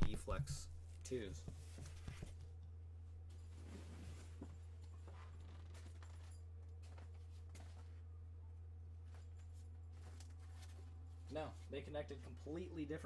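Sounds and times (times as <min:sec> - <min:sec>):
low hum: 0:02.3 - 0:13.0.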